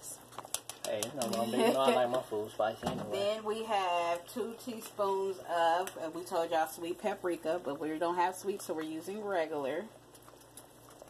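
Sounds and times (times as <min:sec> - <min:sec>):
spice jar shaken clicking: 0:00.4 - 0:01.3.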